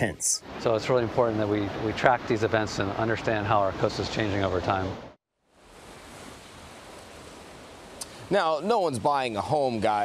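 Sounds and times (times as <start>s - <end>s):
ocean surf hissing: 0.4s - 10.0s.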